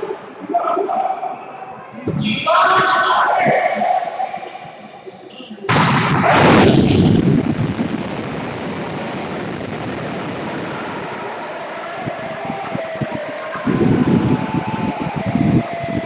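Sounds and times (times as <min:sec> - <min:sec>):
echoing sports hall noise: 0:00.0 - 0:16.0
short loud noises: 0:05.7 - 0:07.6.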